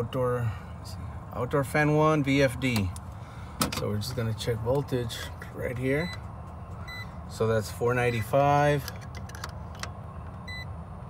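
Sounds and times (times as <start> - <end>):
hvac equipment hum: 0.0 - 11.0.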